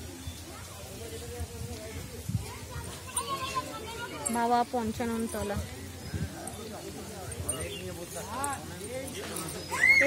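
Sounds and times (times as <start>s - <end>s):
distant people talking: 0.0s - 10.0s.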